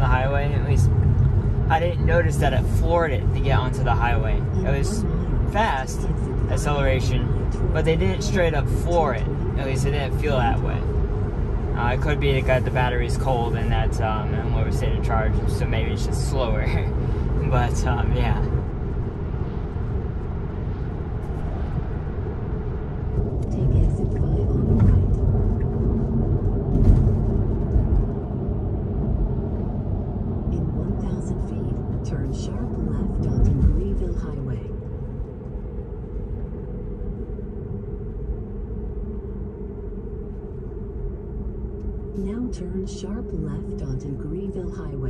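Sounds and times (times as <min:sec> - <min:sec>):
tyre and road noise in car cabin: 0:00.0 - 0:30.9.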